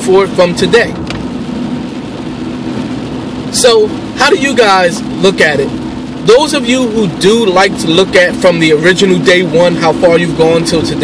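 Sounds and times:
car engine and road hum: 0:00.0 - 0:11.0.

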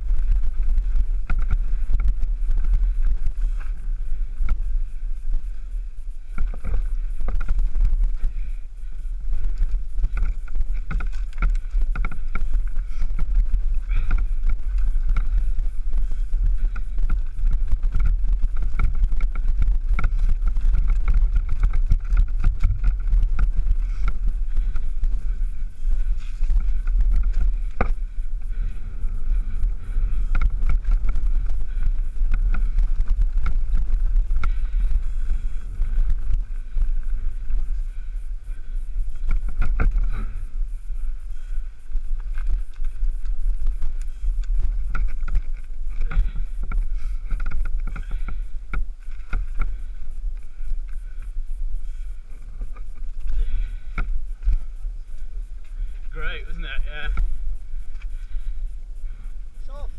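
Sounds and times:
bike rattling and knocking: 0:00.0 - 0:59.9
wind buffeting microphone: 0:00.0 - 0:59.9.

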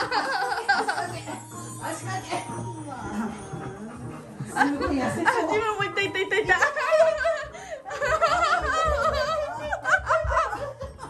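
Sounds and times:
woman laughing: 0:00.0 - 0:01.4, 0:04.6 - 0:11.0.

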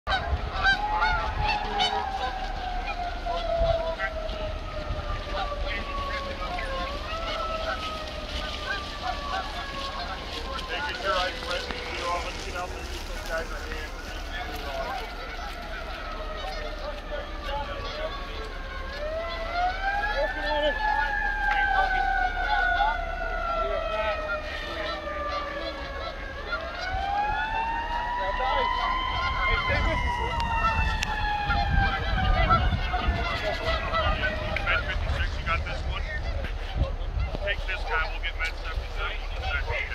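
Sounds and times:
emergency siren wailing: 0:00.1 - 0:39.9
geese honking: 0:00.1 - 0:39.9.

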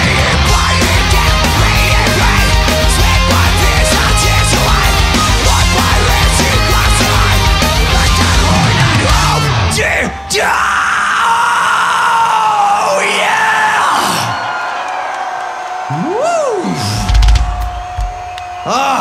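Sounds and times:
live heavy metal band: 0:00.0 - 0:14.4
crowd yelling: 0:00.0 - 0:19.0.

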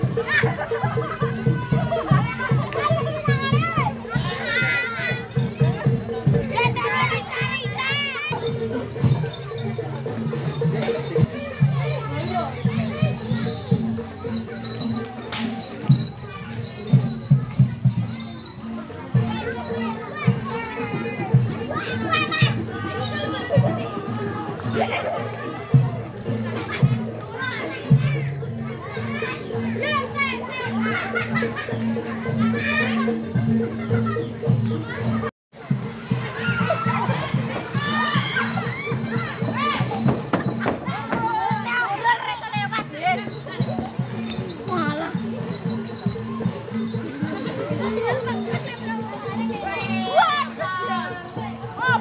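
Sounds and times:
steady drum beat: 0:00.0 - 0:18.2, 0:29.7 - 0:52.0
children shouting and chattering: 0:00.0 - 0:52.0.

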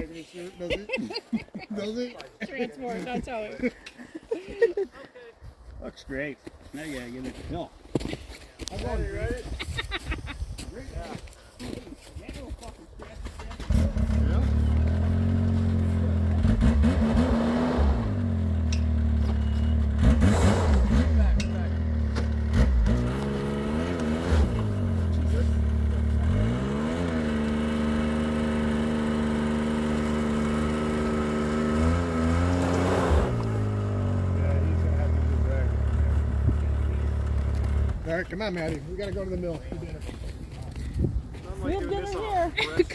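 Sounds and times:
snowmobile engine revving: 0:13.4 - 0:38.4.

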